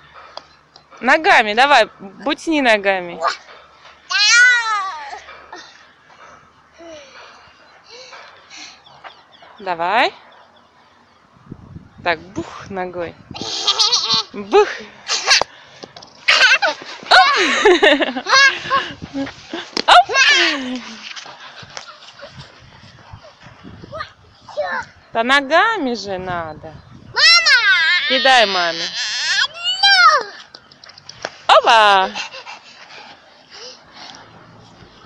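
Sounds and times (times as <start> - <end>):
toddler squealing and shouting: 4.1 - 5.2, 16.3 - 17.4, 20.0 - 20.6, 27.1 - 30.4
young child squealing: 27.2 - 30.2.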